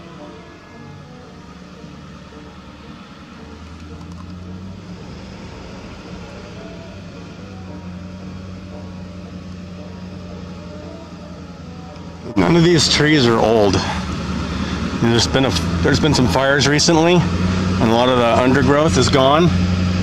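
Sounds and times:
car engine drone from cabin: 0:00.0 - 0:20.0.

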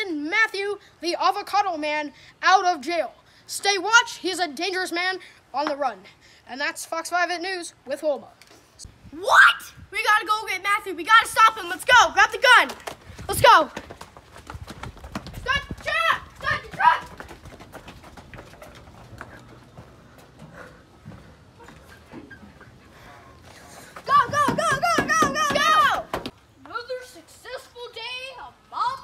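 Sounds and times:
child yelling: 0:09.2 - 0:12.7, 0:15.4 - 0:17.2, 0:24.0 - 0:29.0
children's voices: 0:15.4 - 0:17.2, 0:23.7 - 0:29.0.

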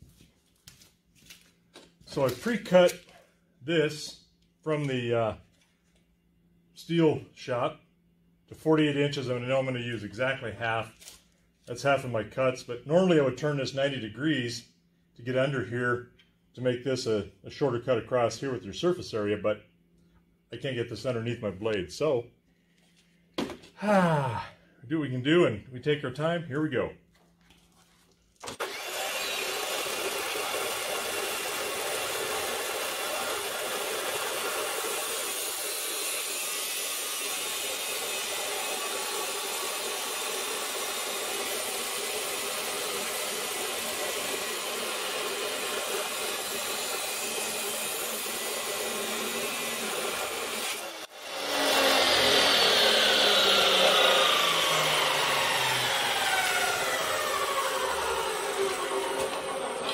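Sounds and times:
saw wheel whine spinning down: 0:28.5 - 0:59.9
chop saw grinding steel: 0:28.6 - 0:59.9.

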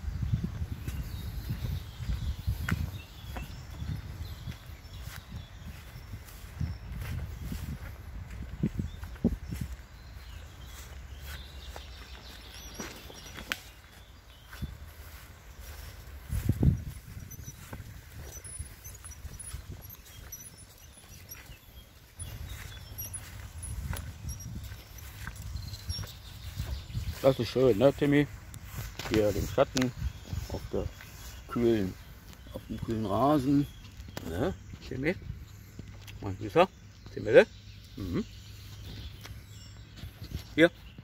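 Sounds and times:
footsteps through long grass: 0:00.1 - 0:36.4
faint high chirps: 0:09.0 - 0:35.2.

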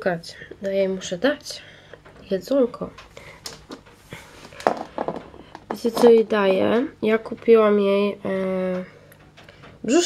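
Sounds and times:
woman speaking: 0:00.0 - 0:03.0, 0:05.7 - 0:08.9.

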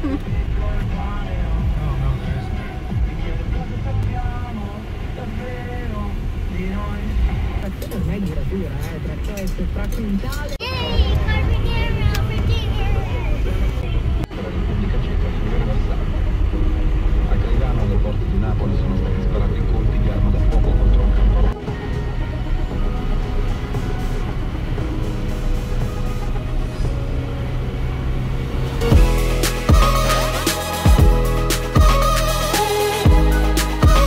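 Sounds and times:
music: 0:00.0 - 0:04.1, 0:16.0 - 0:34.0
car road rumble: 0:00.0 - 0:34.0.

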